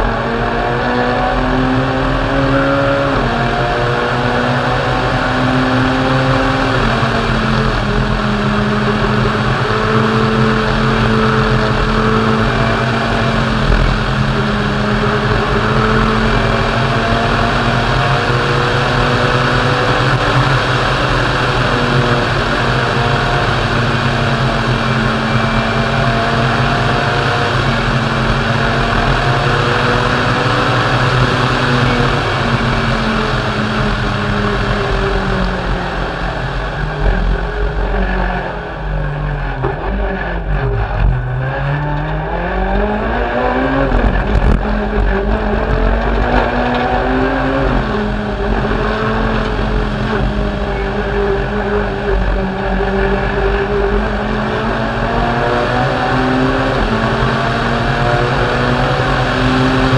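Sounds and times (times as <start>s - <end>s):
rally car engine revving: 0.0s - 59.9s.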